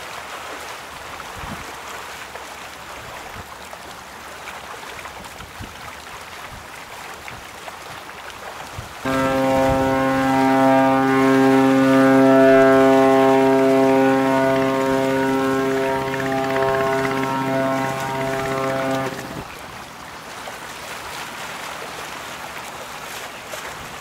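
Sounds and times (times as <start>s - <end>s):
ship's horn blast: 9.1s - 19.6s.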